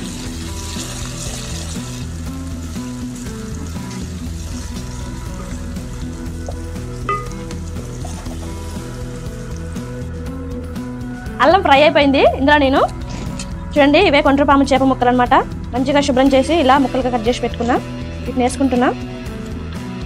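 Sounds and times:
wooden spoon stirring in pan: 0.0s - 9.8s
onions sizzling in hot oil: 0.0s - 10.3s
background music: 0.0s - 20.0s.

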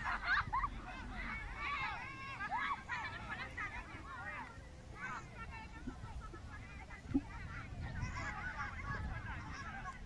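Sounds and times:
low rumble on microphone: 5.1s - 10.0s.

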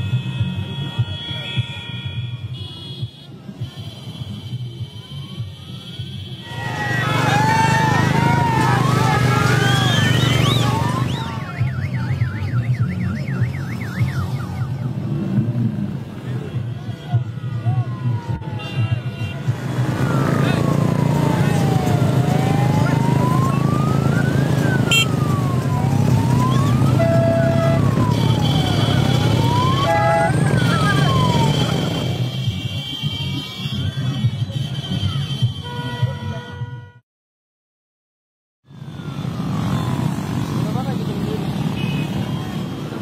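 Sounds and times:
horn blasts: 0.0s - 6.8s, 24.8s - 25.3s, 26.9s - 37.0s
crowd noise: 0.5s - 36.4s
siren wailing: 5.3s - 15.0s, 17.6s - 18.9s, 19.9s - 32.2s
motorcycle engines droning: 6.4s - 18.6s, 19.4s - 32.4s, 38.8s - 43.0s.

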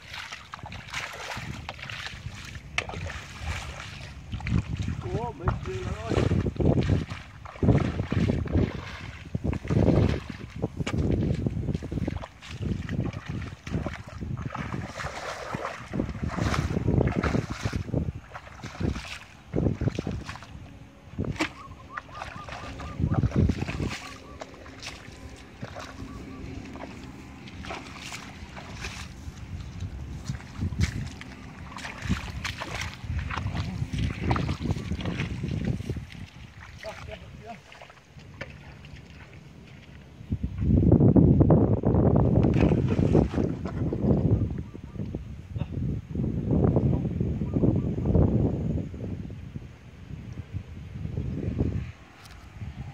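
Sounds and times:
feet splashing in muddy water: 0.0s - 40.7s, 42.1s - 44.3s, 51.8s - 52.9s
wind buffeting microphone: 0.0s - 52.9s.

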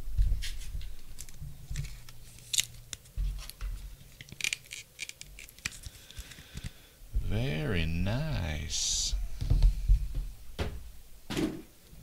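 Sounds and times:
cards scraping and clicking: 0.4s - 6.8s.

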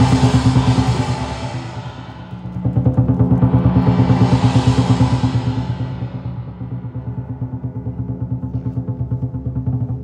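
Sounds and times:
big drum beaten fast: 0.0s - 10.0s.

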